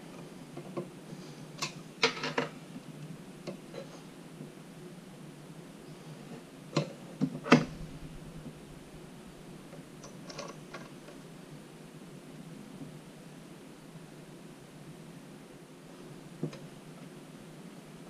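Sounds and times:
steady low background noise: 0.0 - 18.0.

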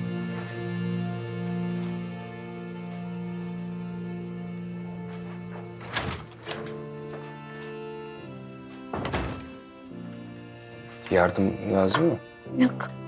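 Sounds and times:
soft background score chords: 0.0 - 5.8, 6.4 - 13.0.

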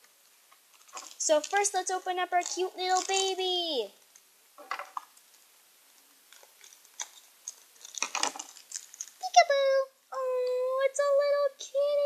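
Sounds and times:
plastic toy packaging crinkling: 0.6 - 5.4, 6.2 - 9.7.

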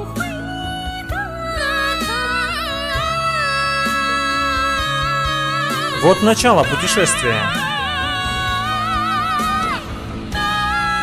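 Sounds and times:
musical accompaniment: 5.8 - 10.1
man singing a long high note: 5.9 - 9.0.

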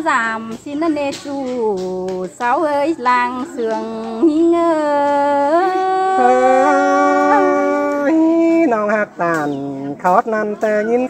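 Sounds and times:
person singing long note: 5.4 - 8.4.

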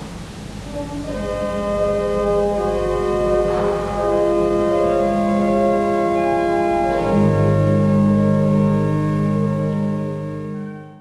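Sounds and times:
pipe organ playing chords: 0.0 - 11.0.

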